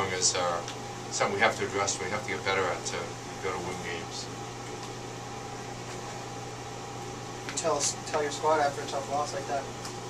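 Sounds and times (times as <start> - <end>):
low even hum: 0.0 - 10.0.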